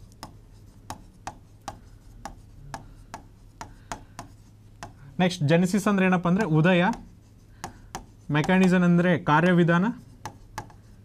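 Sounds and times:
marker tapping on whiteboard: 0.0 - 5.0, 6.3 - 9.6, 10.2 - 10.9
faint low hum: 0.0 - 11.0.

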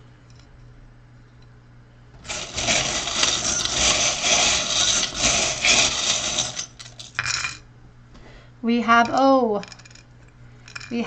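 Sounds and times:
metal charms rattling in bowl: 2.3 - 7.6.

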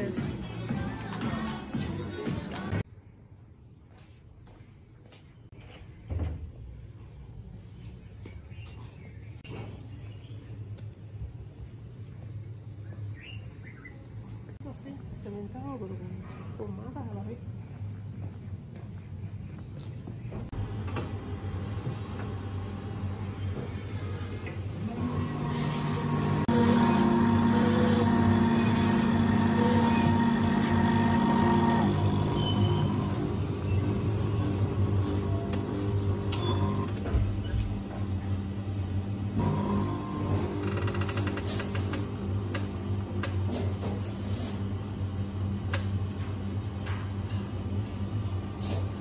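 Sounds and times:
coffee machine humming: 20.5 - 49.0.

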